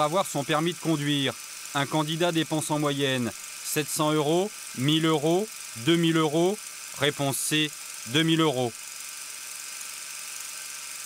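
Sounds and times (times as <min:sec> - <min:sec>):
steady whirring hiss: 0:00.0 - 0:11.0.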